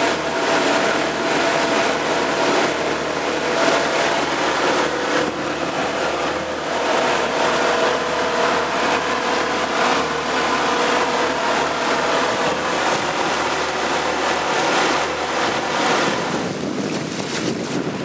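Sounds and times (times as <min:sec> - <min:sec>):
outboard motor running: 0:00.0 - 0:18.0.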